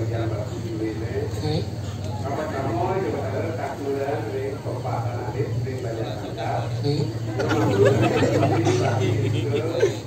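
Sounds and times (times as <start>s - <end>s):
man speaking through pa system: 8.4s - 10.0s.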